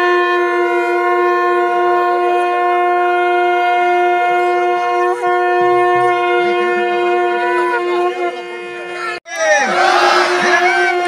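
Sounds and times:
wind instrument long note: 0:00.0 - 0:11.0.

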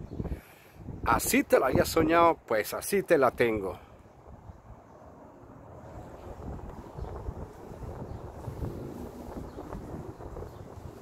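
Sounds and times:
wind buffeting microphone: 0:00.0 - 0:02.4, 0:03.4 - 0:11.0.

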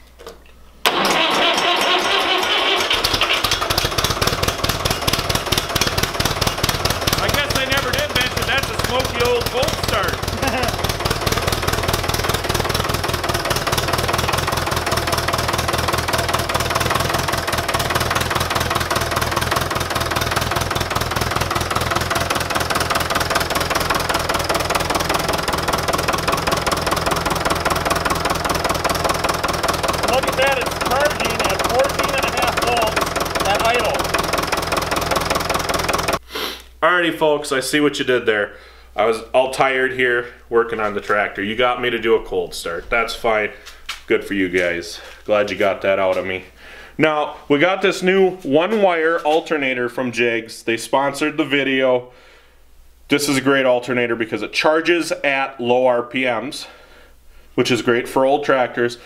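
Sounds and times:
diesel tractor engine cranking: 0:00.8 - 0:36.2
tractor engine idling: 0:00.8 - 0:36.2.

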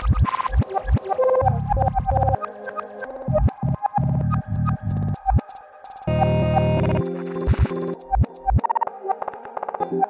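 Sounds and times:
lo-fi glitch beat: 0:00.0 - 0:10.0
chopped low bass chord: 0:06.1 - 0:07.7.

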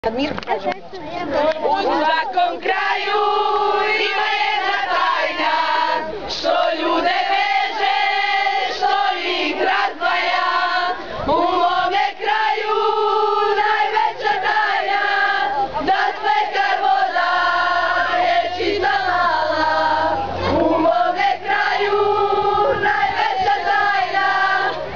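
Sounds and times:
young people singing in unison: 0:01.6 - 0:24.9.

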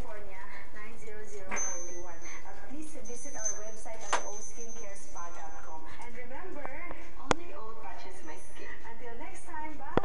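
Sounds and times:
thin high ringing: 0:01.3 - 0:06.0
small bells jingling: 0:01.4 - 0:06.0
sharp bell strikes: 0:01.5 - 0:02.4, 0:03.2 - 0:05.3.

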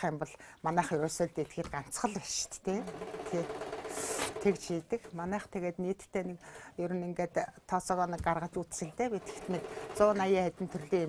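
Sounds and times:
woman speaking: 0:00.0 - 0:11.0
sewing machine running: 0:02.7 - 0:04.8, 0:09.1 - 0:11.0.

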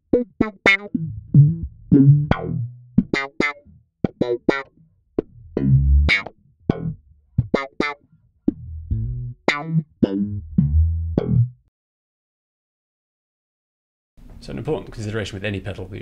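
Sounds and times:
slap bass with auto-wah filter: 0:00.1 - 0:11.7.

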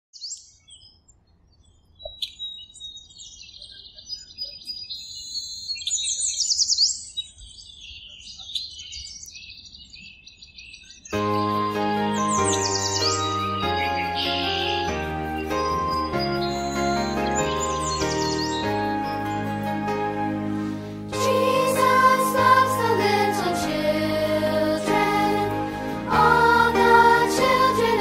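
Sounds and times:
birds chirping and singing: 0:01.6 - 0:19.8
instrumental music: 0:11.2 - 0:28.0.

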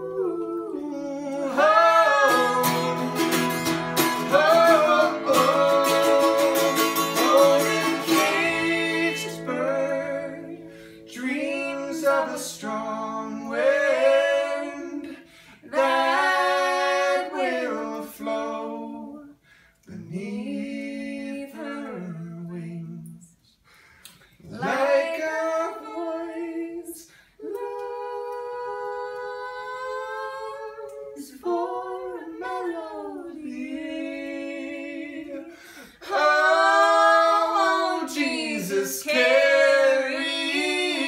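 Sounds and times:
man and woman singing duet: 0:00.0 - 0:23.3, 0:24.4 - 0:41.0.

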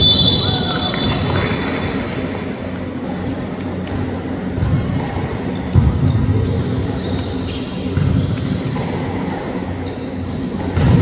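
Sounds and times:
sports hall low rumble: 0:00.0 - 0:11.0.

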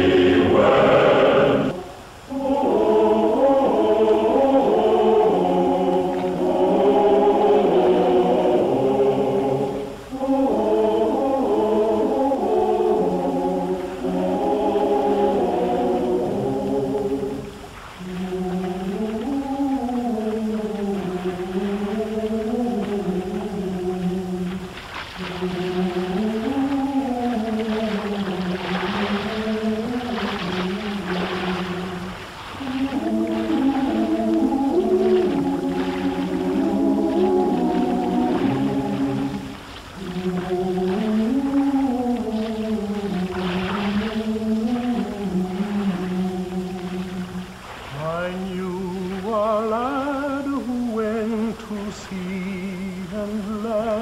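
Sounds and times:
wordless choir singing: 0:00.0 - 0:54.0.

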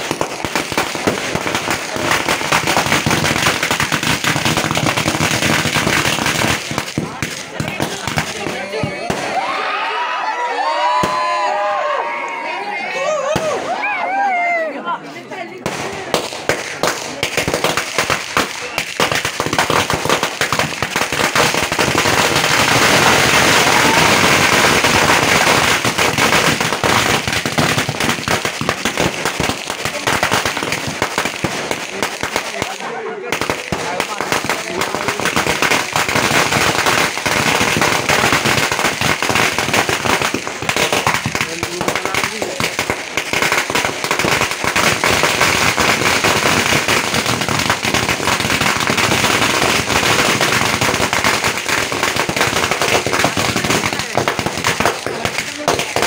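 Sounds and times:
firecrackers crackling bangs: 0:00.0 - 0:09.6, 0:15.5 - 0:56.0.

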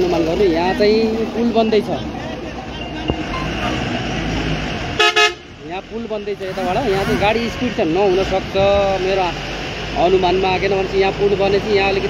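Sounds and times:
truck engines rumbling: 0:00.0 - 0:12.0
vehicle horn blast: 0:05.0 - 0:05.5.

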